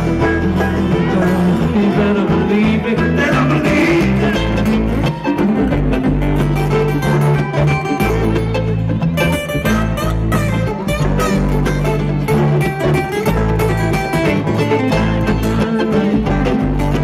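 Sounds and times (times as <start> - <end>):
bluegrass string band: 0.0 - 17.0
upright bass: 0.0 - 17.0.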